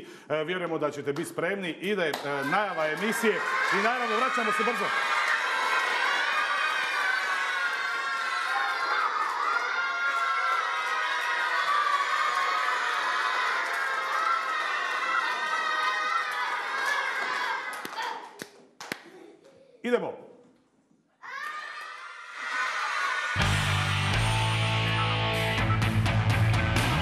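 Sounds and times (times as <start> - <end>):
hands clapping: 0.6 - 19.5
boys cheering and shouting: 2.2 - 18.5, 21.2 - 24.0.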